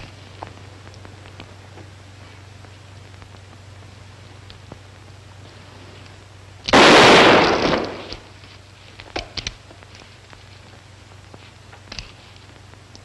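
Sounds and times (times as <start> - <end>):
revolver gunshot with reverberation: 6.7 - 8.3.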